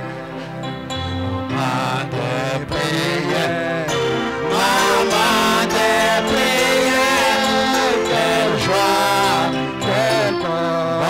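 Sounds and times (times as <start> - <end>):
bass line: 0.0 - 11.0
keyboard chords: 0.0 - 11.0
person singing into a microphone: 1.5 - 11.0.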